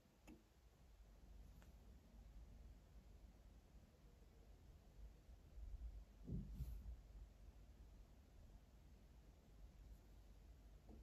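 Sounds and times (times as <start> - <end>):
soft low bump: 6.2 - 7.1.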